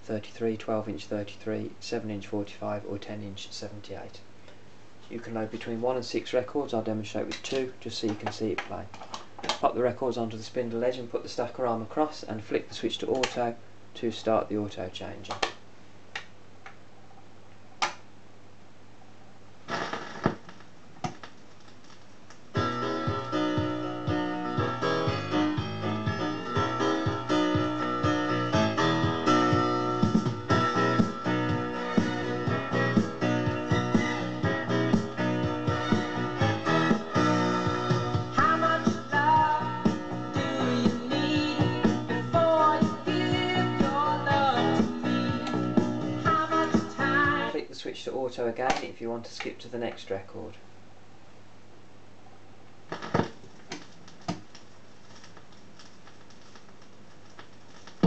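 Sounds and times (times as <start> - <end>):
record player low hum: 0.0 - 58.0
piano music from vinyl record: 22.5 - 47.6
record player clicks and knocks: 52.9 - 58.0.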